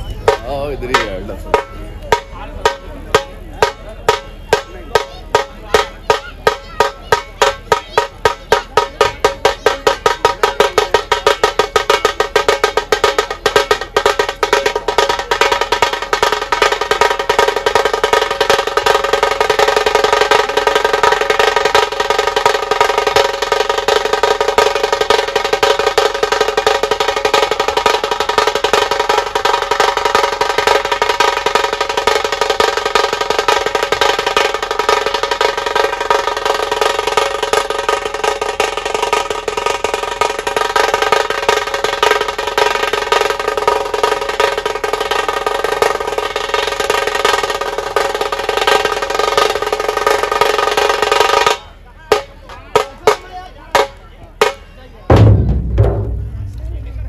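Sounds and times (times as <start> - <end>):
drum band playing: 0.0 - 57.0.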